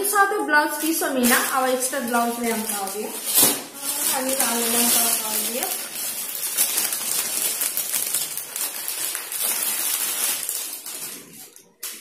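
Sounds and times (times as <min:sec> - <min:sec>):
plastic packaging crinkling: 0:00.6 - 0:12.0.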